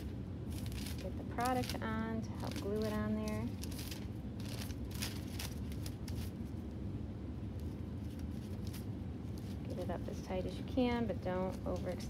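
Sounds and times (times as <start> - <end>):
foil crinkling: 0.0 - 6.5, 7.6 - 9.9, 11.4 - 12.0
steady low hum: 0.0 - 12.0.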